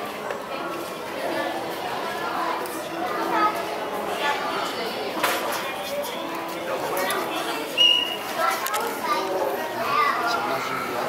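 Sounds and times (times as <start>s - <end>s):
chatter of many people: 0.0s - 11.0s
children's voices: 1.2s - 5.4s, 6.8s - 11.0s.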